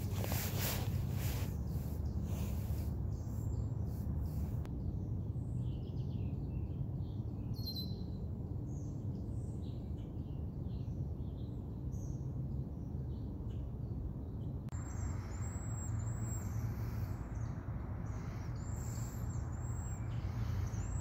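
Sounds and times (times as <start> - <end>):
low background rumble: 0.0 - 21.0
small birds chirping: 0.0 - 21.0.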